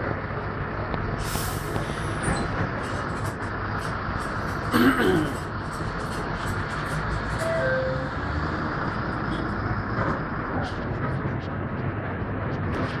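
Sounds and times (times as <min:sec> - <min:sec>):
bus engine and road noise: 0:00.0 - 0:13.0.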